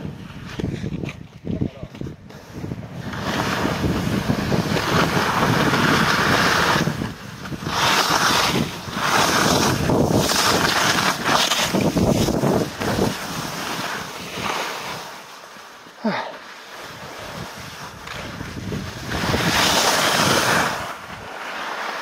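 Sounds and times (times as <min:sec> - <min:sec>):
wind on microphone: 0:00.0 - 0:15.0, 0:16.9 - 0:21.3
skis scraping snow: 0:00.0 - 0:22.0.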